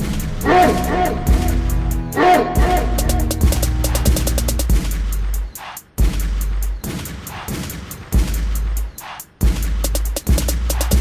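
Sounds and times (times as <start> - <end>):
deep bass notes: 0.0 - 5.5
fast hi-hat ticks: 3.0 - 11.0.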